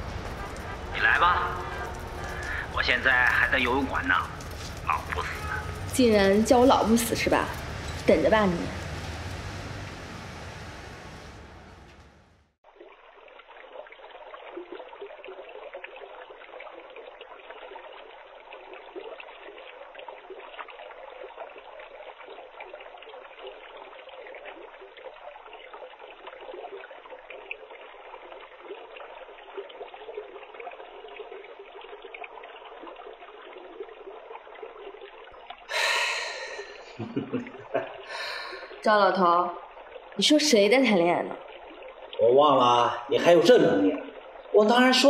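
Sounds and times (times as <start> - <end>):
pool water lapping and splashing: 0.0 - 45.0.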